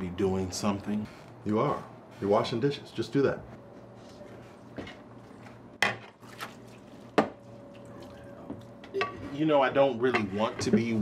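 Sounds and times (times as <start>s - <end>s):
dishes clinking in a sink: 10.0s - 11.0s.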